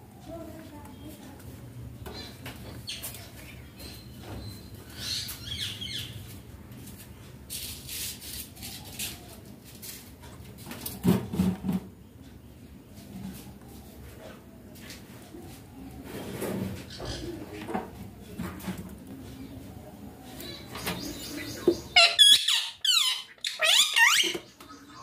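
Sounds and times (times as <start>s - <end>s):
parakeet high call: 21.9s - 24.4s.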